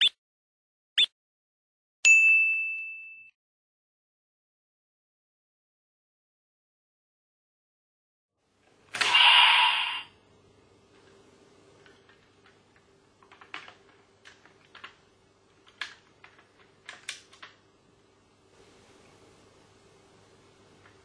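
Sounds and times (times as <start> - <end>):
toy belt electronic voice effect: 9.0 - 10.1.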